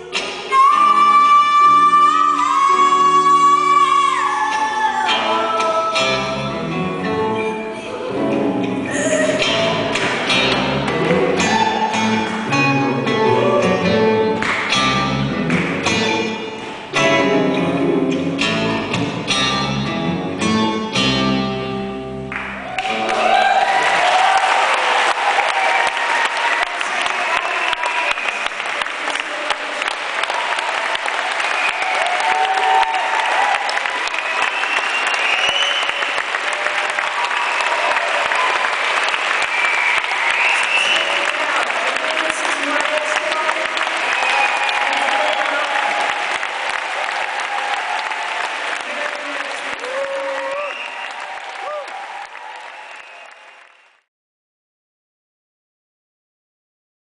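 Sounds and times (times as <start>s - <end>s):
audience cheering and shouting: 0.0s - 18.1s, 22.3s - 53.6s
audience clapping: 9.3s - 12.6s, 14.2s - 17.6s, 22.2s - 54.1s.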